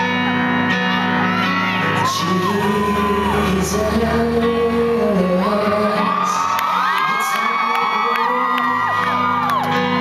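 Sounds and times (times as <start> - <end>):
band keyboard music: 0.0 - 6.7, 7.4 - 10.0
audience screaming and whooping: 0.9 - 4.3, 5.5 - 10.0.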